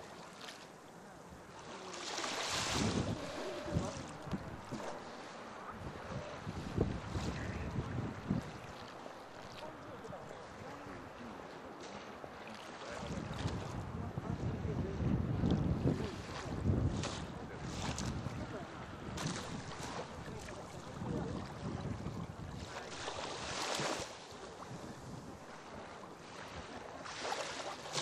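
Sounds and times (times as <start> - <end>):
waves washing onto beach: 0.0 - 28.0
wind buffeting microphone: 2.4 - 5.1, 5.7 - 8.9, 12.9 - 27.2.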